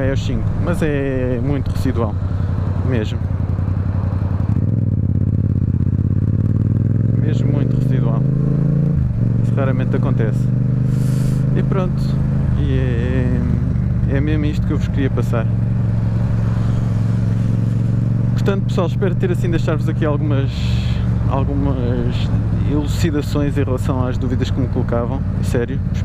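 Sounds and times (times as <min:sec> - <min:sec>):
motorcycle engine running: 0:00.0 - 0:26.0
wind and road noise: 0:00.0 - 0:26.0.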